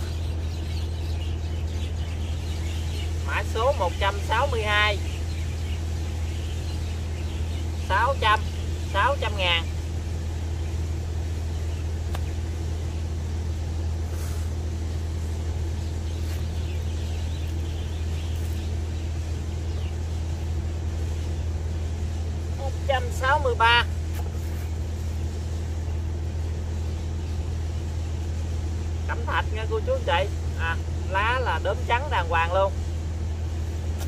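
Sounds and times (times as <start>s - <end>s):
low motor drone: 0.0s - 34.0s.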